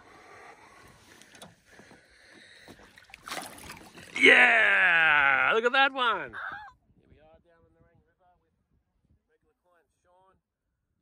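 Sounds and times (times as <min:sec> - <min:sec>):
water lapping: 0:01.0 - 0:04.2
splash of landing net: 0:03.2 - 0:04.0.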